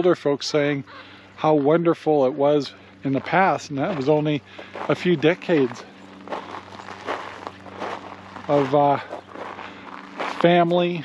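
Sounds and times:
footsteps on dry dirt: 0:02.7 - 0:11.0.

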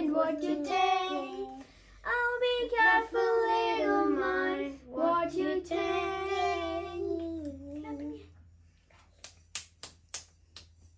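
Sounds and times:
children singing: 0:00.0 - 0:07.3.

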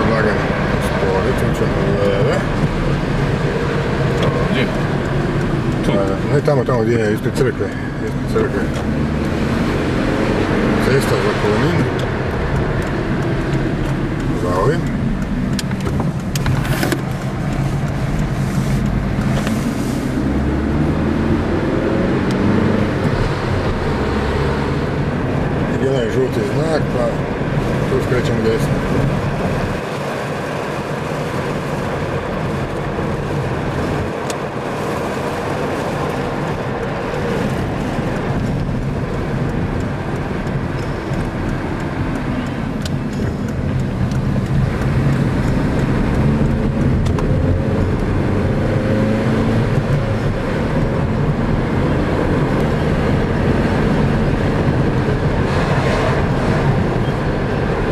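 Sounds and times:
car engine: 0:00.0 - 0:57.9
tyre road noise: 0:00.0 - 0:57.9.

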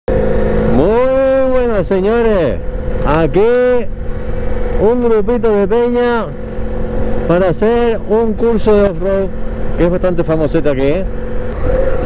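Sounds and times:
motorcycle engine running: 0:00.1 - 0:12.0.

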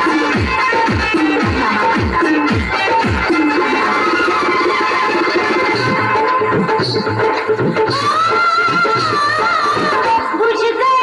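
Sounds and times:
loud dance song playing: 0:00.0 - 0:11.0.

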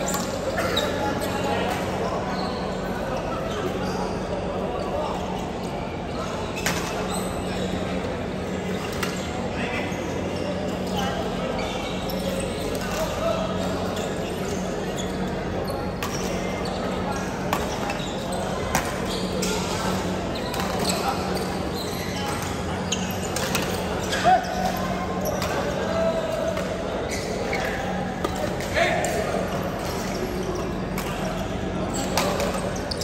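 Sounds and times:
indistinct chatter: 0:00.0 - 0:33.0
sneakers squeaking on court: 0:11.6 - 0:28.6, 0:29.3 - 0:33.0.

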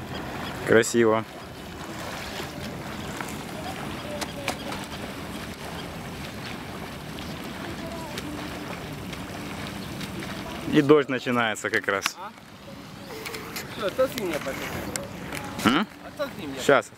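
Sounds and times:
river water: 0:00.0 - 0:16.9
wind: 0:00.0 - 0:16.9
faint distant voices: 0:00.6 - 0:16.9.

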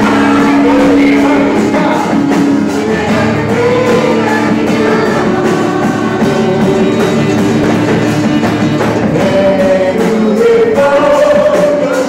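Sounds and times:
group singing a worship song: 0:00.0 - 0:12.0.

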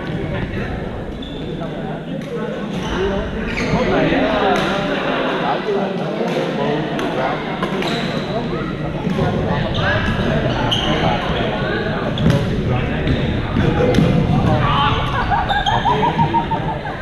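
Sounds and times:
players' voices: 0:00.0 - 0:17.0.

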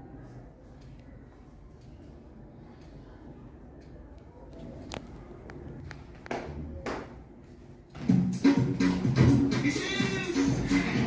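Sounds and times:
classroom room noise: 0:00.0 - 0:11.0.

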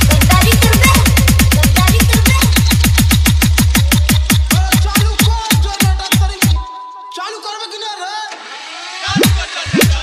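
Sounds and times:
processed voice sample: 0:00.0 - 0:02.8, 0:03.6 - 0:06.7
dance beat with kick drum: 0:00.0 - 0:06.6, 0:09.2 - 0:10.0.

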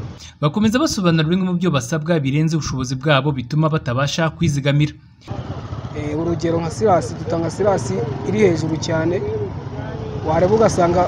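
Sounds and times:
street traffic noise: 0:00.0 - 0:01.3, 0:04.5 - 0:11.0
person talking: 0:02.9 - 0:04.9.

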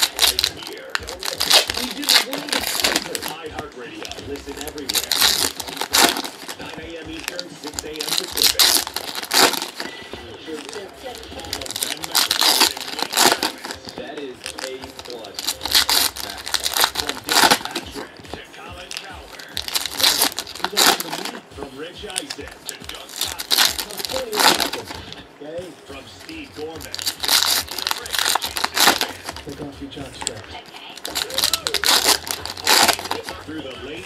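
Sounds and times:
foil wrappers crinkling and tearing: 0:00.0 - 0:34.0.

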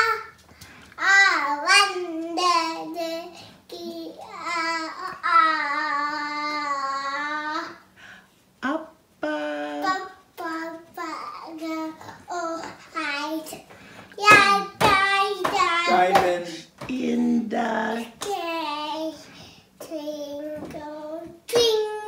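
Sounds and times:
toddler singing: 0:00.0 - 0:00.4, 0:01.0 - 0:07.8, 0:09.6 - 0:13.6, 0:14.2 - 0:16.4, 0:18.0 - 0:22.0.

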